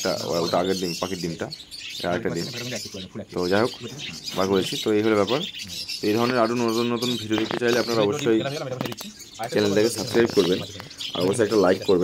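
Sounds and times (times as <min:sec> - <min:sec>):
cage birds chirping: 0:00.0 - 0:12.0
man talking: 0:00.0 - 0:12.0.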